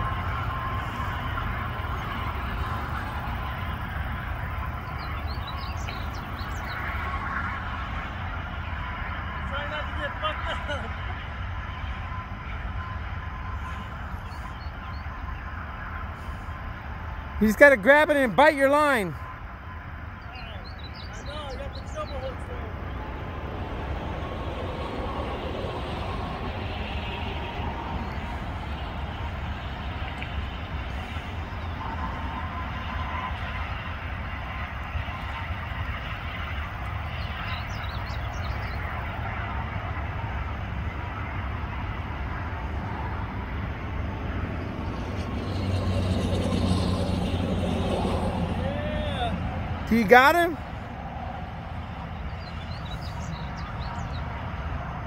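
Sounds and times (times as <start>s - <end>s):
distant road traffic rumble: 0.0s - 55.0s
vehicle engine: 0.0s - 55.0s.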